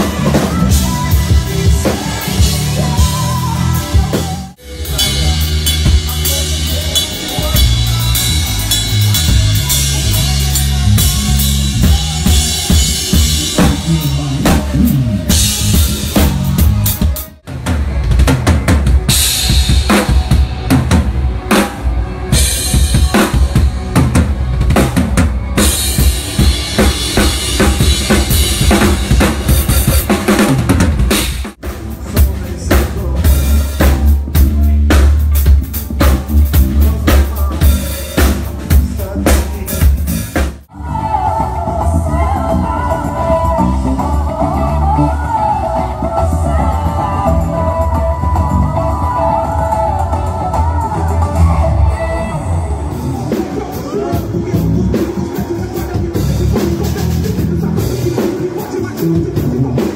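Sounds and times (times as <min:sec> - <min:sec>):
drum kit playing: 0:00.0 - 0:59.9
electric bass playing: 0:00.0 - 0:59.9.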